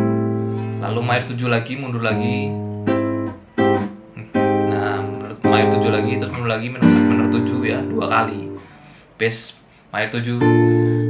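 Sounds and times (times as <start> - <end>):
acoustic guitar chords: 0.0 - 9.0, 10.0 - 11.0.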